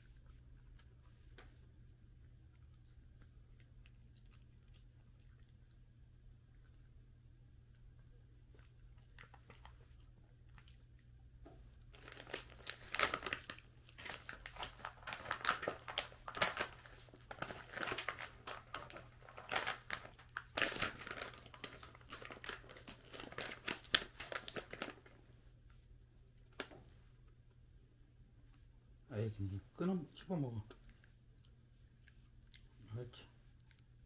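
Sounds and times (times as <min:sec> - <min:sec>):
plastic pouch crinkling: 0:11.9 - 0:25.2.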